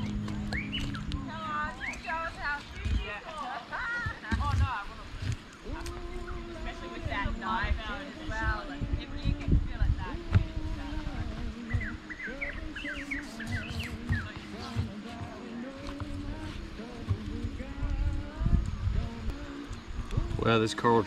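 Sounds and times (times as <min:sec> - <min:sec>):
bird chirping: 0:00.0 - 0:03.2, 0:11.6 - 0:15.0
indistinct voices: 0:00.0 - 0:21.0
low thumps on microphone: 0:08.9 - 0:12.8, 0:13.4 - 0:20.4.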